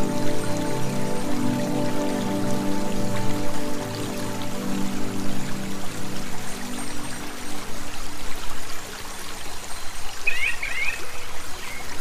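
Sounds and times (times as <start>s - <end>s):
running water: 0.0s - 12.0s.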